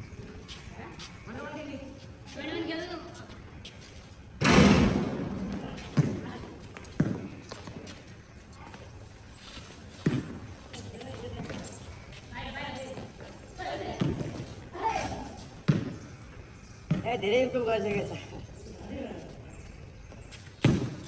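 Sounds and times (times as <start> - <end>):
basketball bouncing on pavement: 4.4 - 7.9, 10.0 - 11.7, 12.4 - 14.5, 15.6 - 16.2, 16.8 - 17.6, 20.6 - 21.0.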